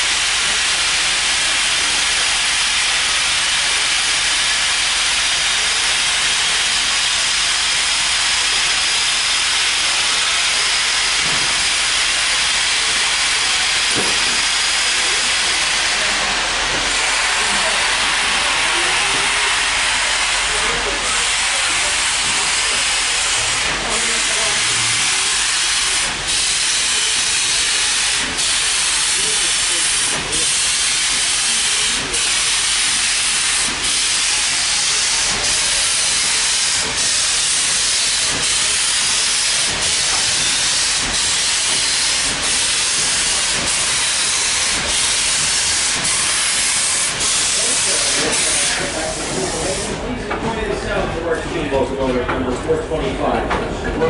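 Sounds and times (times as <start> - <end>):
train wheels rolling on track: 0.0 - 54.0
air rushing past train: 11.5 - 29.4.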